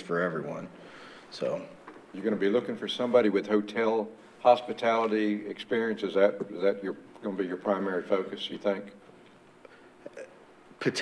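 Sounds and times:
man speaking: 0.0 - 9.0, 10.1 - 11.0.

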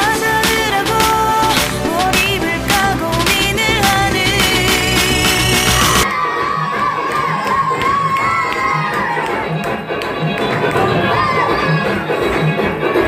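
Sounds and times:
dance music beat: 0.0 - 13.0
crowd cheering and shouting: 3.2 - 13.0
high-pitched whoops: 5.8 - 9.4.

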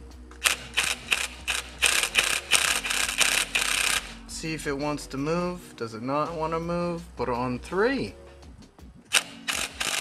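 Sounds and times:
impact wrench hammering: 0.4 - 4.2.

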